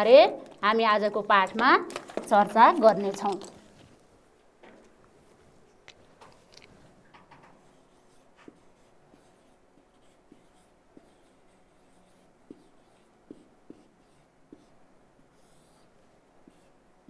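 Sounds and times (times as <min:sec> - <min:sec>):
marker pen squeaking on whiteboard: 0:07.2 - 0:14.8, 0:15.4 - 0:16.7.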